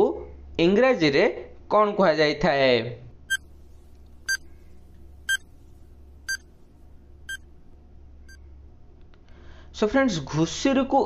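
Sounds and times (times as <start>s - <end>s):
faint low hum: 2.5s - 11.0s.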